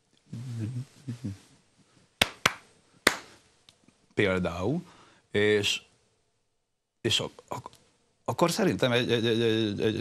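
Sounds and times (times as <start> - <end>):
man clapping hands: 2.2 - 3.3.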